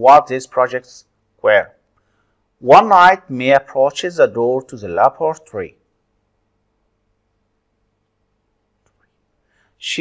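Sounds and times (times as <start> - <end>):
person reading aloud: 0.0 - 1.9, 2.6 - 5.9, 9.8 - 10.0
faint steady hum: 0.0 - 10.0.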